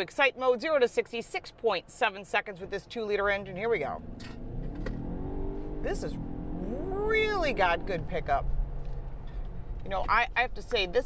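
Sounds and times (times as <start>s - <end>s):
road rumble: 0.0s - 11.0s
car engine accelerating: 3.8s - 9.9s.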